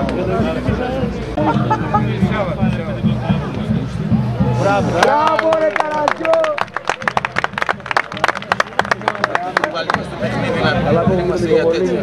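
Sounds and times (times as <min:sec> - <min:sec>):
spectators clapping: 0:04.8 - 0:10.7.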